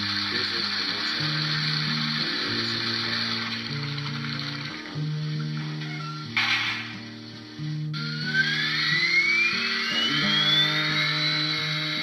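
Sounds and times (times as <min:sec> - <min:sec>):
guitar music: 0:00.0 - 0:12.0
model train motor whining: 0:00.0 - 0:12.0.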